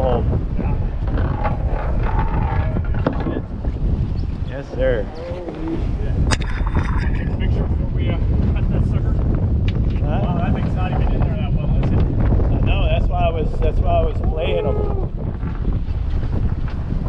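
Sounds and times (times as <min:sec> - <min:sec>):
boat engine rumble: 0:00.0 - 0:17.0
wind buffeting microphone: 0:00.0 - 0:17.0
indistinct voices: 0:04.8 - 0:07.6.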